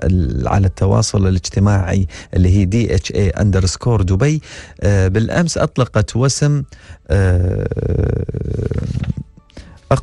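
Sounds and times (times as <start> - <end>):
faint background music: 0.0 - 10.0
person speaking: 0.0 - 10.0.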